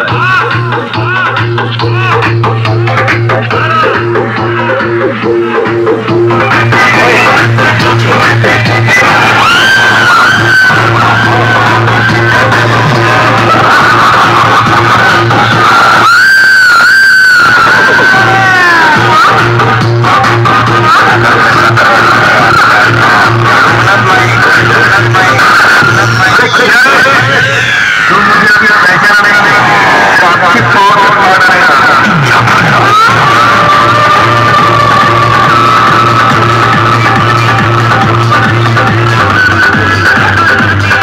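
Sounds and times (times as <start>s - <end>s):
loud dance music from loudspeakers: 0.0s - 41.0s.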